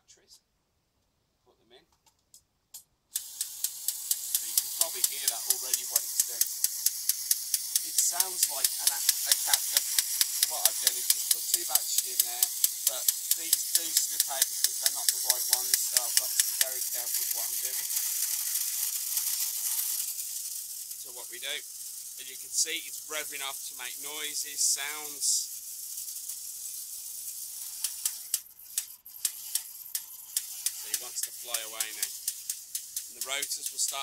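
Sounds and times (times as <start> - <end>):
toy helicopter hissing and clicking: 3.1 - 34.0.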